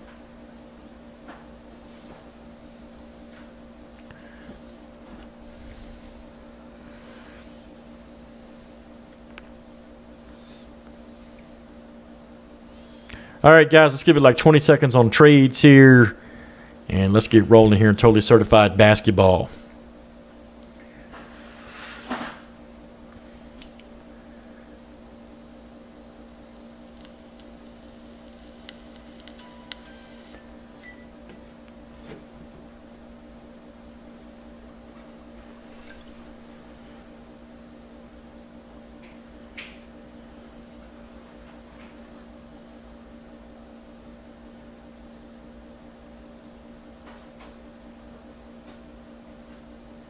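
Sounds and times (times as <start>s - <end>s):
low electrical hum: 0.0s - 50.0s.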